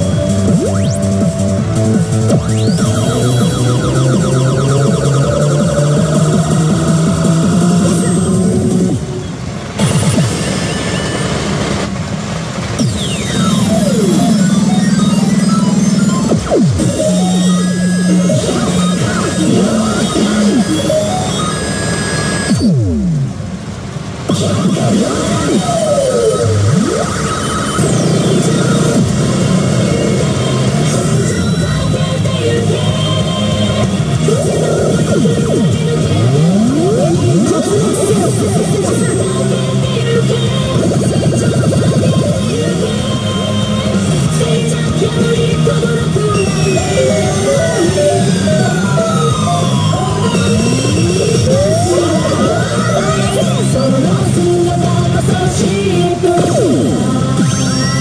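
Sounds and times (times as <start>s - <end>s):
steady held tones: 0.0s - 11.6s, 12.8s - 23.4s, 24.3s - 58.0s
deep falling electronic sweeps: 0.0s - 12.0s, 12.8s - 23.4s, 45.2s - 54.2s
electronic machine music: 0.0s - 12.0s, 12.6s - 58.0s
rising sweeps: 40.6s - 54.8s.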